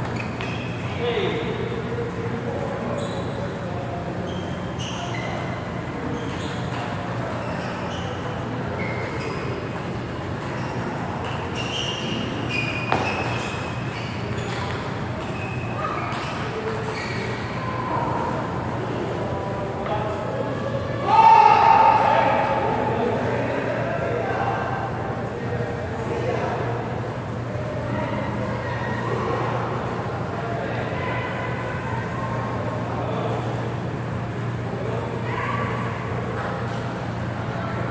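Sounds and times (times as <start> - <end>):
large hall background noise: 0.0 - 37.9.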